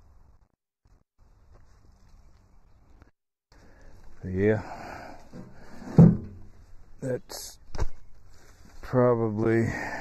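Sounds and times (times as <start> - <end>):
wood handling noise: 5.3 - 6.6
wooden log thud: 5.9 - 6.5.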